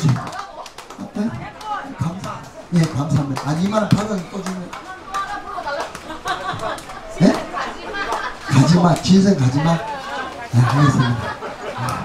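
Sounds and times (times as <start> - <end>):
voices chattering: 0.0 - 12.0
man speaking through microphone: 1.0 - 4.8, 8.5 - 9.9, 10.5 - 12.0.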